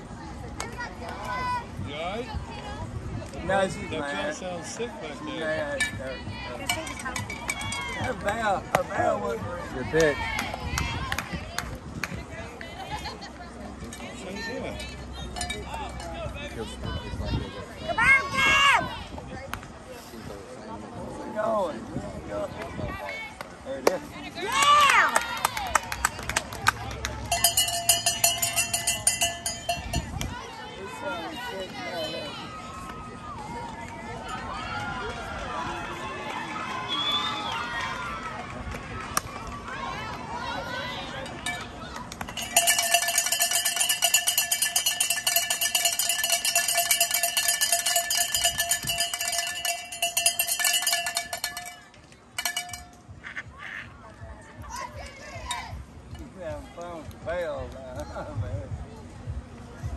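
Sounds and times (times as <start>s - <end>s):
crowd shouting and cheering: 4.6s - 12.2s, 15.0s - 19.2s, 24.2s - 53.0s
cowbell rung fast: 27.3s - 30.1s, 42.4s - 53.0s.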